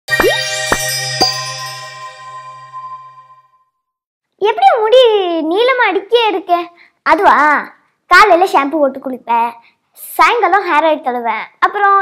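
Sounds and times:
percussive jingle hits: 0:00.1 - 0:03.6
ringing chime tones: 0:00.1 - 0:03.8.

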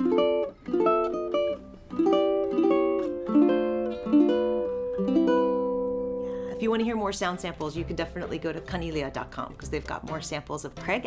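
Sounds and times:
ukulele plucked chords: 0:00.0 - 0:11.0.

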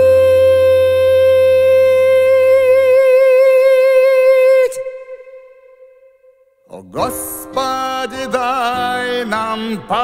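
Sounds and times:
person singing a long held note: 0:00.0 - 0:06.4.

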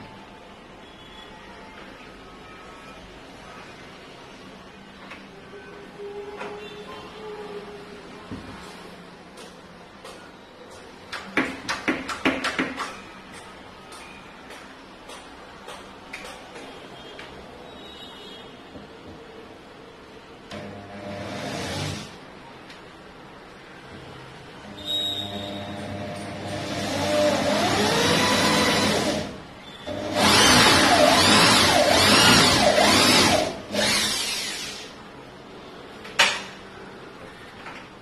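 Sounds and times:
low background noise: 0:00.0 - 0:38.0
clicks and taps on wood panel: 0:11.1 - 0:16.7
electric drill boring into wood: 0:21.0 - 0:22.1, 0:25.7 - 0:34.9.

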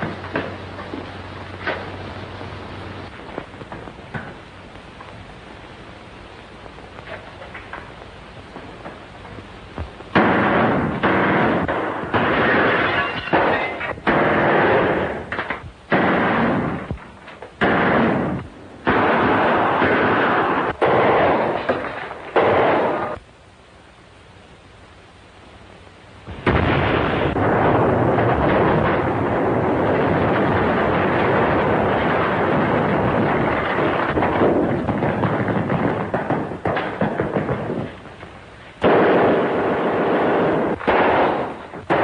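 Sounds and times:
machine-gun fire: 0:10.1 - 0:17.0, 0:17.6 - 0:23.2, 0:26.3 - 0:38.0, 0:38.8 - 0:42.0
explosion blasts: 0:10.1 - 0:23.2, 0:26.3 - 0:42.0.

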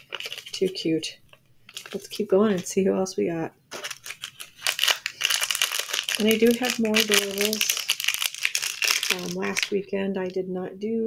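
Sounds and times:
packaging torn and crinkled: 0:00.0 - 0:00.8, 0:01.7 - 0:02.7, 0:03.7 - 0:09.8.

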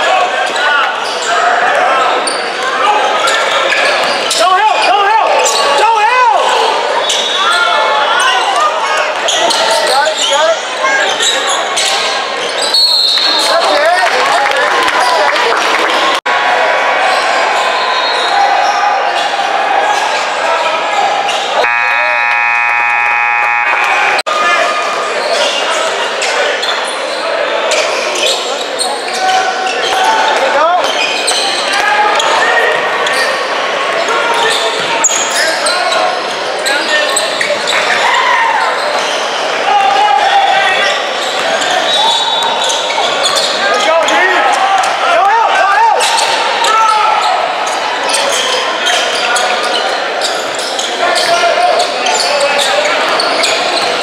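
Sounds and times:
players and spectators calling out: 0:00.0 - 0:54.0
scoreboard buzzer: 0:21.6 - 0:24.2
sneakers squeaking on hardwood: 0:26.2 - 0:32.4, 0:40.8 - 0:44.2, 0:47.7 - 0:54.0.

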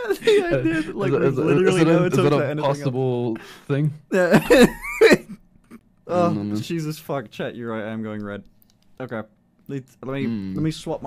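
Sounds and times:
person laughing: 0:00.0 - 0:01.0, 0:04.2 - 0:05.8.

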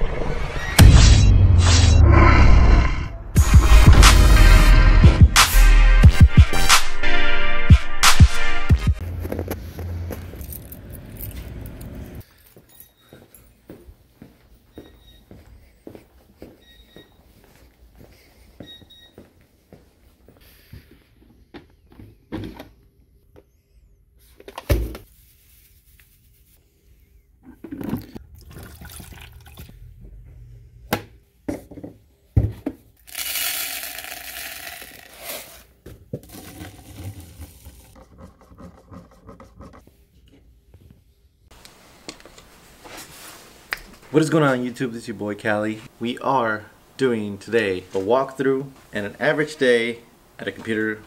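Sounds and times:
coffee pouring into cup: 0:28.0 - 0:29.7.

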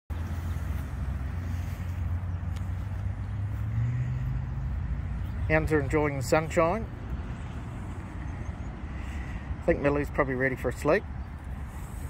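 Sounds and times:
low engine hum: 0:00.1 - 0:12.0.

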